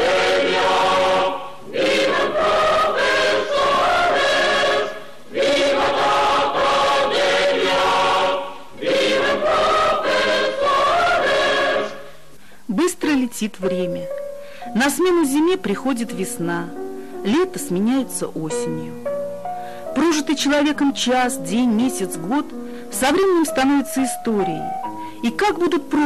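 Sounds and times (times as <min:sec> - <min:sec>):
choir singing: 0:00.0 - 0:12.2
choir breaths: 0:00.0 - 0:12.7.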